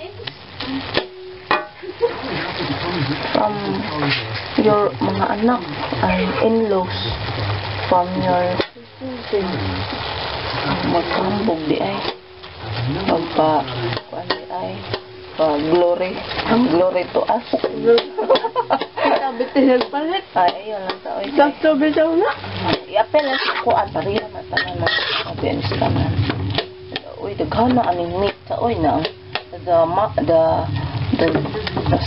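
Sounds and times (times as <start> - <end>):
meat sizzling in a wok: 0.0 - 32.0
spatula scraping and clicking on pan: 22.7 - 27.0.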